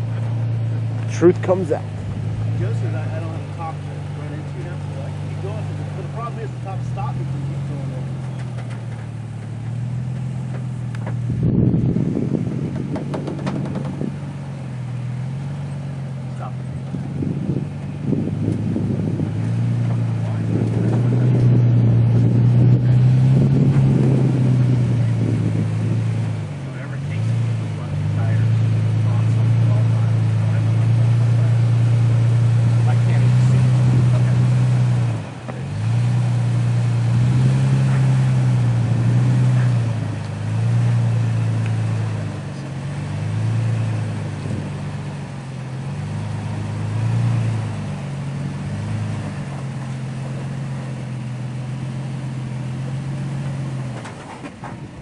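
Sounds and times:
truck engine revving under load: 0.0 - 55.0.

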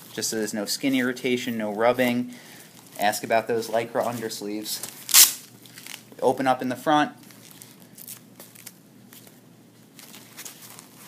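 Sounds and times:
faint rustling of straps: 0.0 - 6.2, 7.2 - 11.0.

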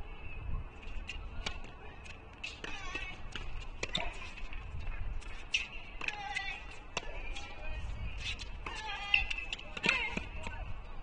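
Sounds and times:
tennis shoes squeaking on court: 0.8 - 10.3.

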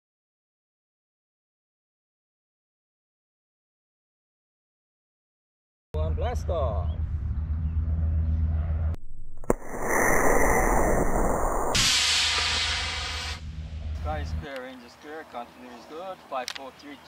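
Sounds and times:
rocket motor ignition pop: 9.4 - 13.4
rocket thrust hiss: 9.4 - 13.5.

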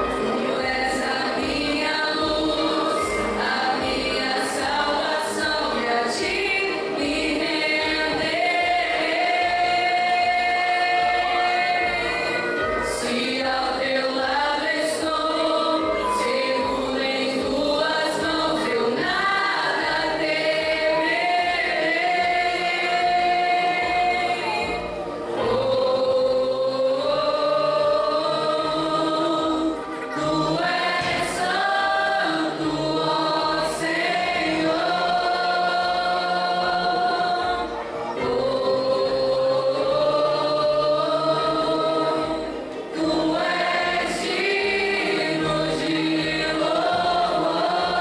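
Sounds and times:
women's choir singing a hymn: 0.0 - 48.0.

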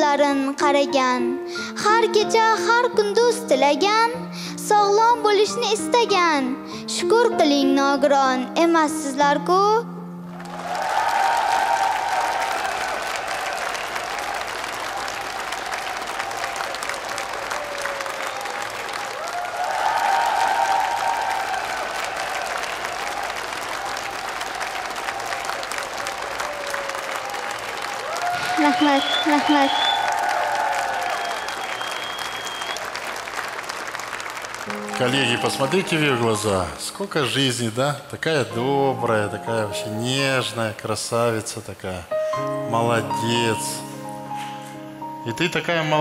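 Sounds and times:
slow background music: 0.0 - 13.4, 34.6 - 46.0
audience applauding: 10.3 - 37.6.

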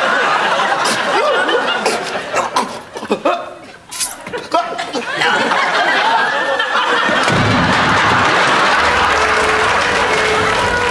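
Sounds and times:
audience applauding: 5.8 - 10.9.

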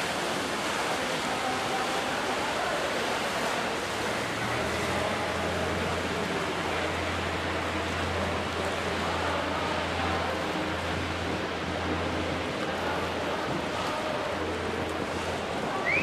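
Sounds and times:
wind: 0.0 - 16.0.

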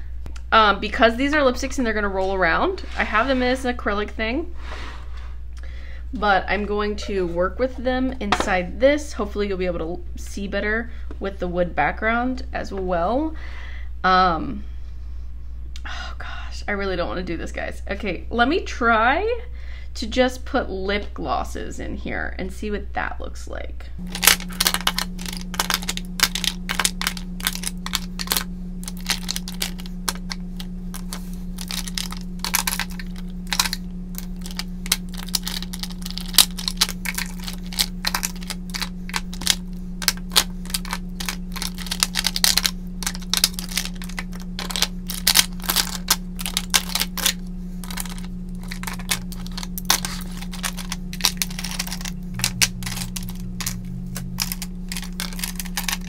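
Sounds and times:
low hum: 0.0 - 11.1, 24.0 - 56.0
plastic tubes clicking on wood: 24.1 - 56.0.

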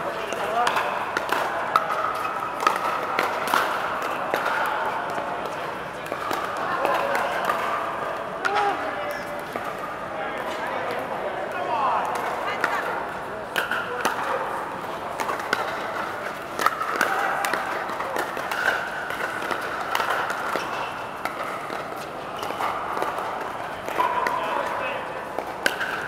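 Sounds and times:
players' voices: 0.0 - 26.0
paddles striking plastic balls: 0.1 - 8.8, 9.4 - 26.0.

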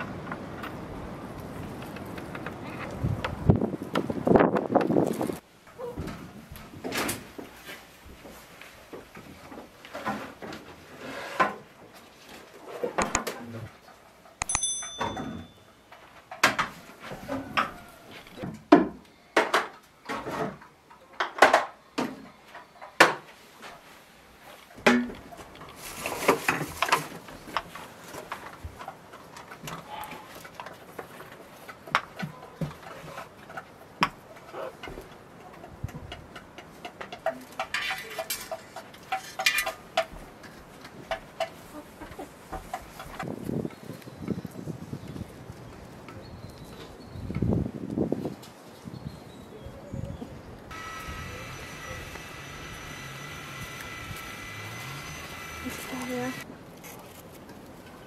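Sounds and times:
ringing clink: 14.4 - 15.8.

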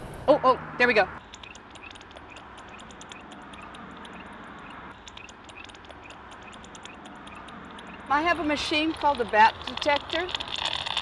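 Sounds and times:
bat detector clicks: 1.2 - 4.3.

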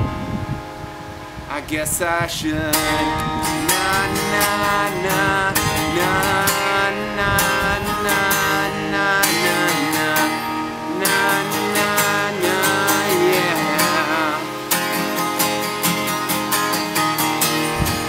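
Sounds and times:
acoustic guitar strumming: 0.0 - 18.0
man singing: 1.5 - 15.2.

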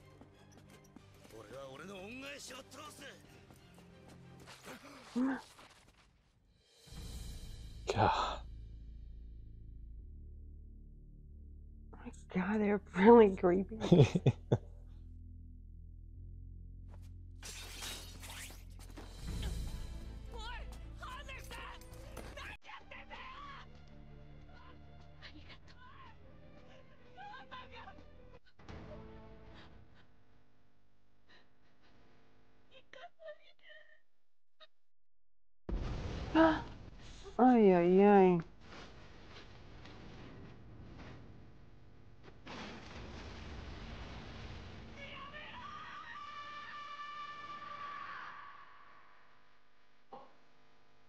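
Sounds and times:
background music: 0.0 - 5.4, 6.7 - 15.1, 18.9 - 29.8.

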